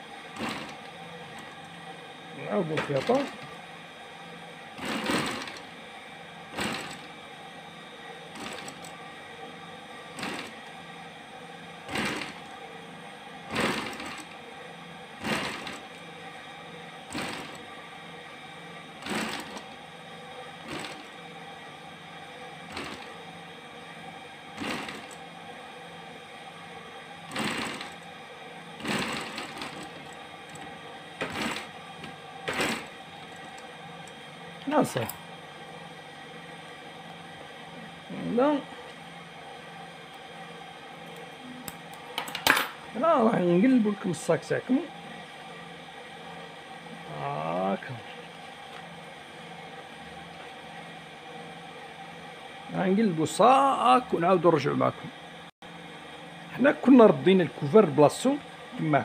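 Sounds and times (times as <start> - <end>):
sewing machine motor humming: 0.0 - 59.0
sewing machine noise bursts: 0.3 - 1.6, 4.7 - 5.8, 6.4 - 7.2, 8.3 - 9.0, 10.1 - 10.7, 11.8 - 12.6, 13.4 - 14.4, 15.1 - 16.4, 17.0 - 17.7, 18.9 - 19.8, 20.5 - 21.2, 22.6 - 23.2, 24.5 - 25.3, 27.2 - 28.1, 28.7 - 33.6.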